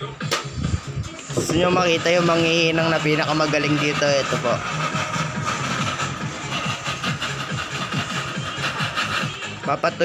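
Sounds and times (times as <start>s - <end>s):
gas torch burning: 0.3s - 9.6s.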